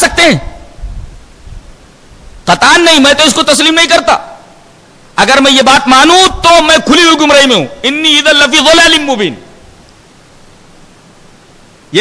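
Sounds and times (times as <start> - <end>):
faint background hiss: 0.0 - 12.0
man speaking: 2.5 - 4.4, 5.2 - 9.5.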